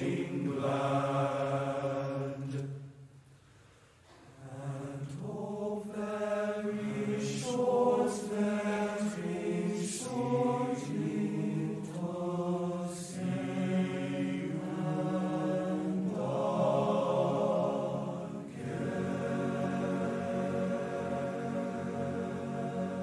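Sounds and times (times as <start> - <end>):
choir singing slow chant: 0.0 - 3.0, 4.0 - 23.0.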